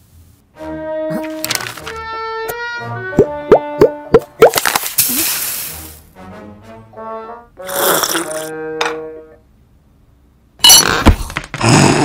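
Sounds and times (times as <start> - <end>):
cartoon music notes: 0.6 - 4.6
hiss: 5.0 - 6.0.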